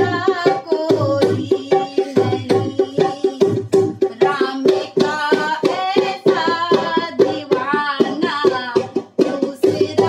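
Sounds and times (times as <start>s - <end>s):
rhythmic percussion: 0.0s - 10.0s
woman singing devotional song: 0.0s - 10.0s.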